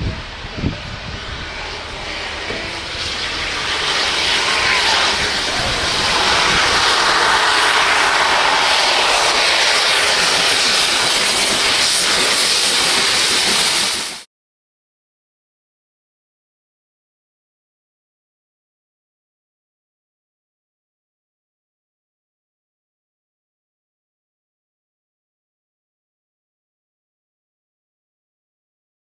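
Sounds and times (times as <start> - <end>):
steam locomotive passing: 0.0 - 14.3.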